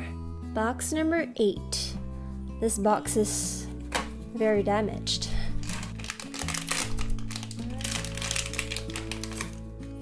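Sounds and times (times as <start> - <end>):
plastic bag crinkling: 5.6 - 9.6
plastic bag tearing: 5.6 - 9.6.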